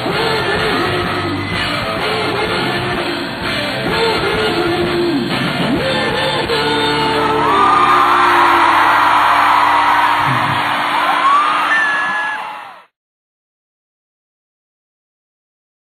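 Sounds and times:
crowd whooping and yelling: 6.9s - 12.9s.

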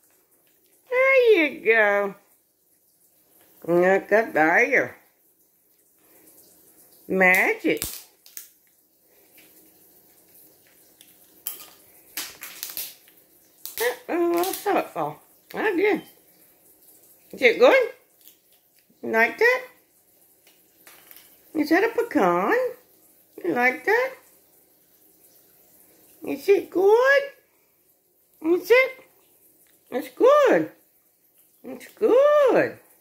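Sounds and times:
faint room hiss: 0.0s - 33.0s
woman's voice: 0.9s - 2.2s, 3.6s - 5.0s, 7.1s - 7.8s, 13.8s - 16.1s, 17.3s - 18.0s, 19.0s - 19.8s, 21.6s - 22.8s, 23.4s - 24.2s, 26.2s - 27.4s, 28.4s - 29.1s, 29.9s - 30.8s, 31.6s - 32.8s
parrot cracking nut shell: 7.8s - 8.6s, 11.0s - 14.8s.

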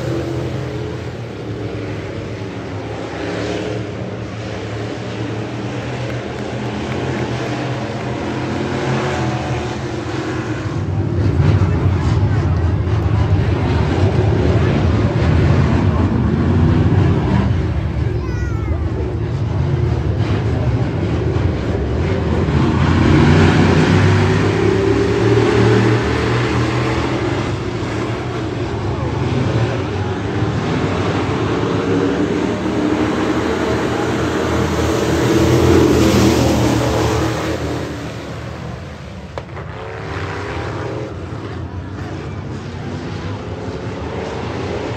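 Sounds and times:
stock car engines racing: 0.0s - 44.9s.

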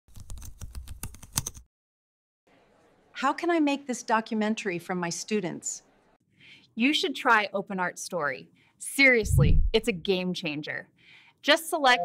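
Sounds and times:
computer keyboard typing: 0.1s - 1.6s.

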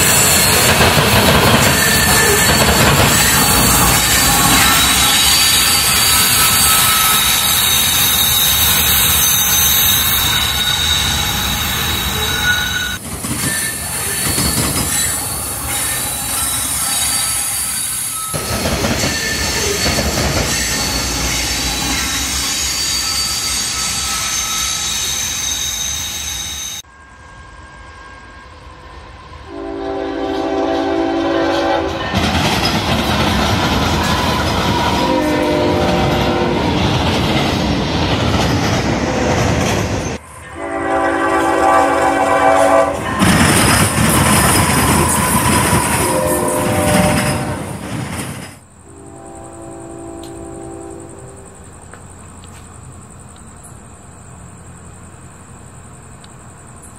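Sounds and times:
locomotive and cars passing: 0.0s - 17.5s
train wheels clattering on rails: 0.0s - 25.5s, 31.4s - 40.2s, 42.0s - 48.8s
wheel squeal: 0.0s - 26.9s, 42.7s - 47.8s
locomotive air horn blasts: 1.9s - 8.2s, 29.5s - 32.2s, 34.7s - 36.6s, 40.5s - 43.4s, 44.8s - 47.8s, 48.9s - 51.6s.

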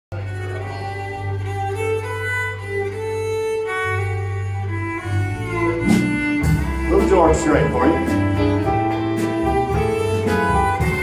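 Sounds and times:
fiddle melody: 0.1s - 11.0s
live country band: 0.2s - 11.0s.

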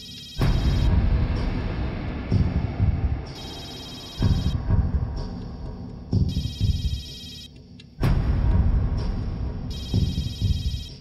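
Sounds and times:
low pulsing suspense music: 0.0s - 11.0s
phone ringtone trilling: 3.4s - 4.6s, 6.2s - 7.5s, 9.7s - 11.0s.

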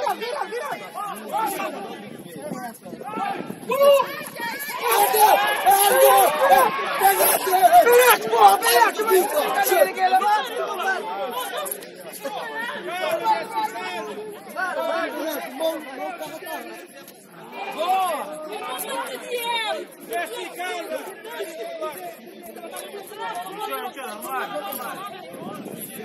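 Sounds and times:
distant voices of players calling: 3.0s - 25.2s.

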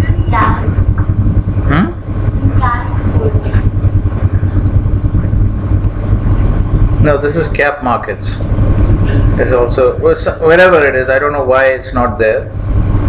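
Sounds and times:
low background rumble: 0.0s - 13.0s.

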